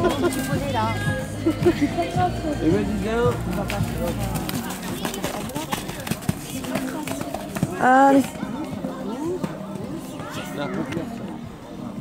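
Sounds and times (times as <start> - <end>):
horse hoofbeats on wet sand: 3.2 - 10.4.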